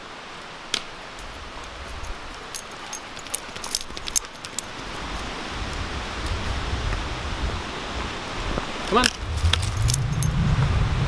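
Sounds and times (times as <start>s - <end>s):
metallic jingling of collar tags: 1.2s - 5.3s, 9.0s - 10.4s
steady low rumble: 9.1s - 11.0s.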